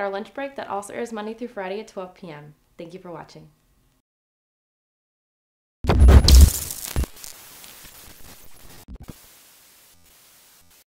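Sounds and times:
brief crackles: 5.9s - 9.2s
static-like hiss: 5.9s - 10.9s.

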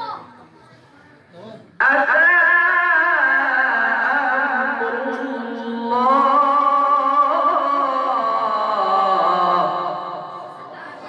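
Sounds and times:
man reciting melodically: 1.5s - 10.8s.

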